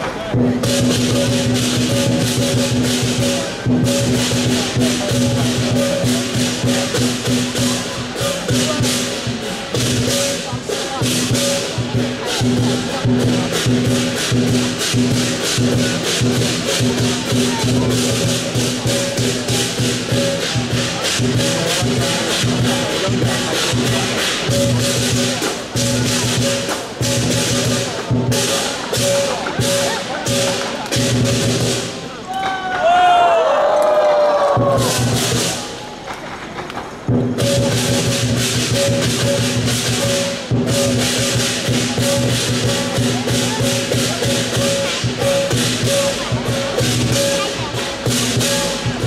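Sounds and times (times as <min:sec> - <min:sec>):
lion dance percussion: 0:00.0 - 0:49.0.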